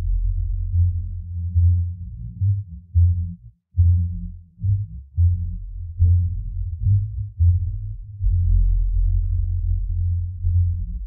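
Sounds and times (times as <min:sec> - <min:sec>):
bass line: 0:00.0 - 0:11.0.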